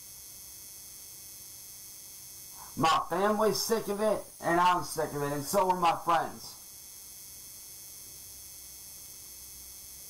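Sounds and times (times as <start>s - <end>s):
faint hum: 0.8s - 10.0s
thin high-pitched whine: 2.5s - 6.7s
low background hiss: 2.6s - 6.6s.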